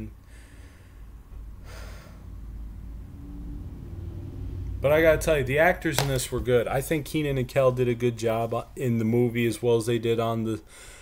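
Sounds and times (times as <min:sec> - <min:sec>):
low steady hum: 0:00.0 - 0:11.0
man breathing: 0:00.2 - 0:02.6, 0:10.6 - 0:11.0.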